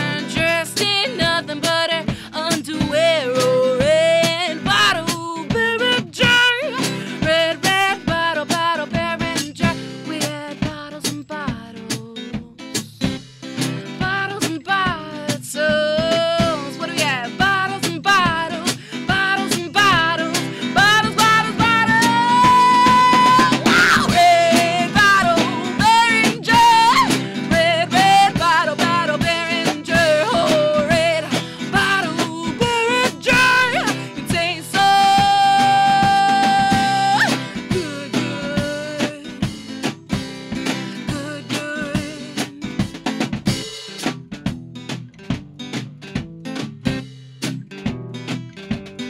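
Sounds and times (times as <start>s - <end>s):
woman singing: 0.0s - 43.0s
strummed acoustic guitar: 0.0s - 49.0s.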